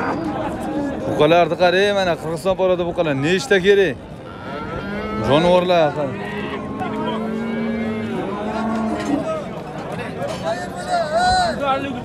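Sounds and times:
bulls mooing: 4.2s - 9.6s.

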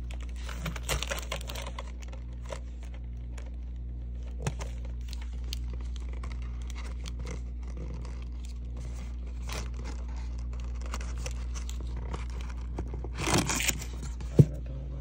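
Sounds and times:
paper bag rustling: 0.0s - 3.5s
steady low hum: 0.0s - 15.0s.

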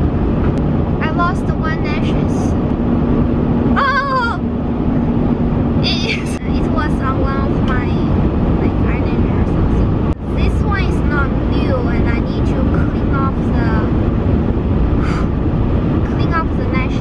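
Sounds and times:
car road and engine rumble: 0.0s - 17.0s
person talking: 1.0s - 2.5s, 5.8s - 13.9s, 16.1s - 17.0s.

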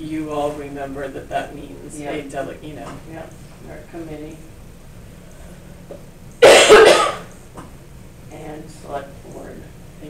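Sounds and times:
person coughing: 6.4s - 7.3s.

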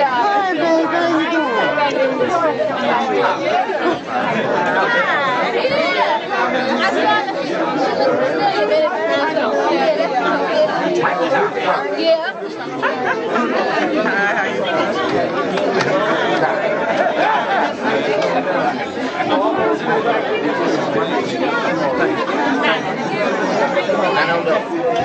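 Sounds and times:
people talking: 0.0s - 25.0s.

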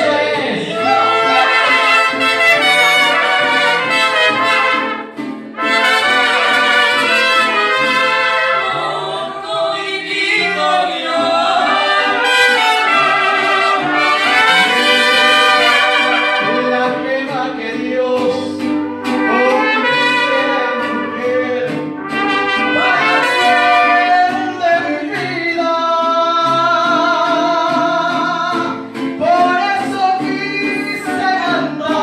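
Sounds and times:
mariachi music with trumpets: 0.0s - 32.0s.

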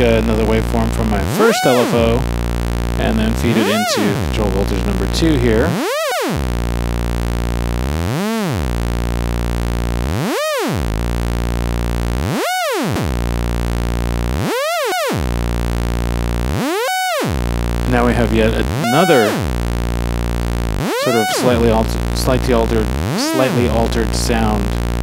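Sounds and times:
buzzy synthesizer tone swooping: 0.0s - 25.0s.

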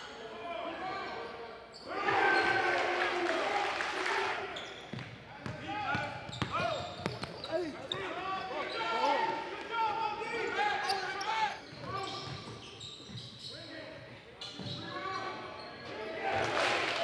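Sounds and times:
shoes squeaking on hardwood court: 4.6s - 9.4s, 10.8s - 15.9s
basketball bouncing: 4.9s - 7.4s.

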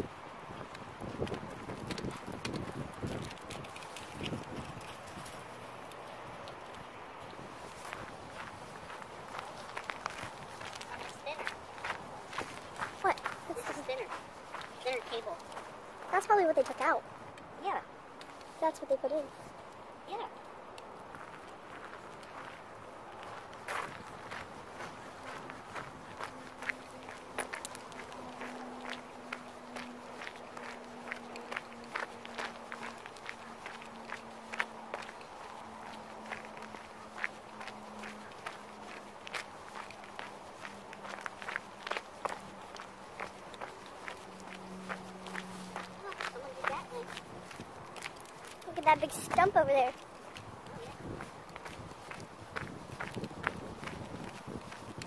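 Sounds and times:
footsteps on gravel: 1.0s - 17.0s, 21.0s - 55.0s.

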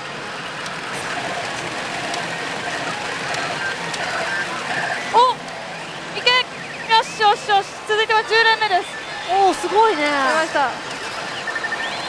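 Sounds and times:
machine sound effects: 0.0s - 12.0s
rush of pachinko balls: 0.1s - 6.9s.

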